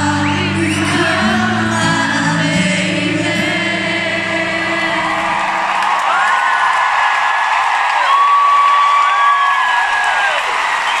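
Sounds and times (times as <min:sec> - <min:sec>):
crowd cheering and whooping: 0:04.8 - 0:11.0
high screams: 0:05.2 - 0:11.0.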